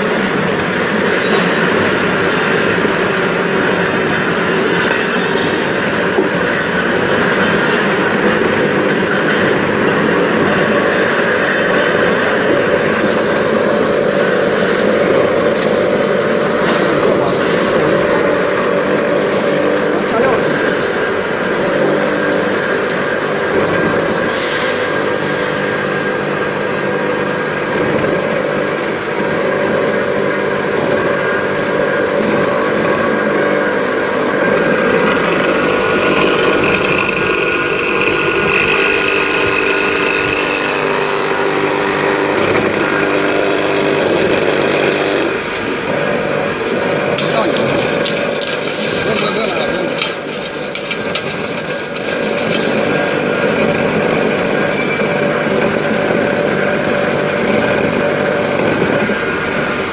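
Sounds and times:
high whine: 0.0s - 59.9s
mill motor grinding: 0.0s - 59.9s.

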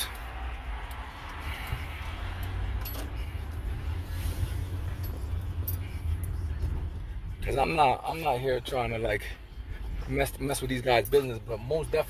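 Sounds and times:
car engine rumble from inside: 0.0s - 12.0s.

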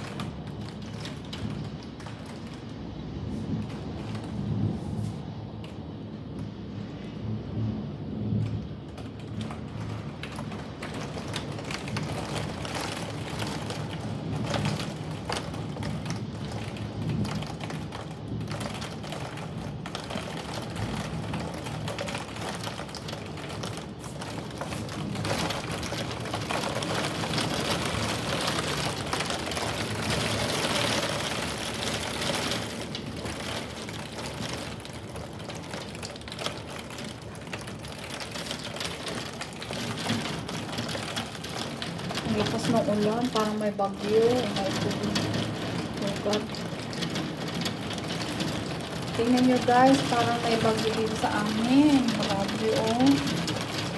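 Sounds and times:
heavy rain against a window: 0.0s - 53.9s.

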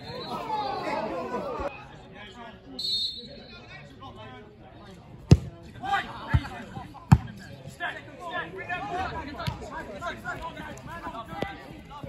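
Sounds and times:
people shouting and talking: 0.0s - 12.0s
boot kicking football: 5.3s - 5.5s.

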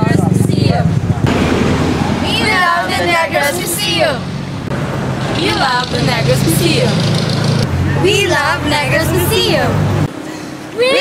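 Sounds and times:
people talking: 0.0s - 1.3s, 2.0s - 4.2s, 5.2s - 7.0s, 7.8s - 9.8s, 10.7s - 11.0s.

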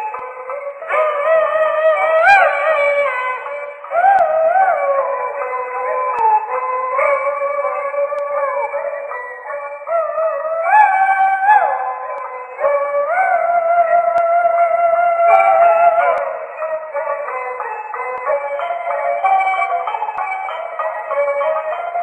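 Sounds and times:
opera music from old record: 0.0s - 22.0s.

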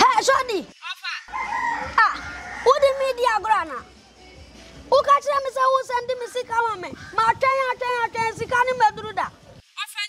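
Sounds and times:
rooster crowing: 1.3s - 3.2s.

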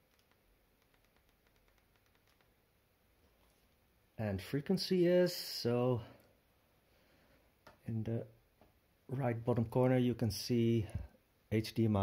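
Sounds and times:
very faint tiny clicks: 0.0s - 2.6s.

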